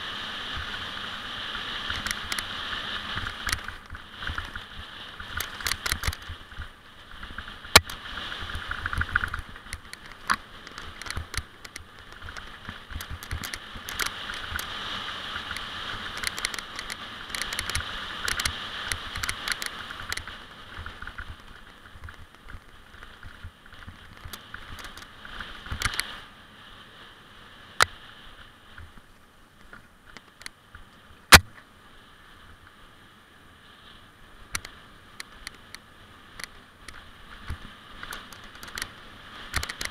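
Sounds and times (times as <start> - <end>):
tyres rolling on dirt: 0.0 - 26.2
bike rattling over bumps: 0.0 - 26.3, 34.5 - 39.9.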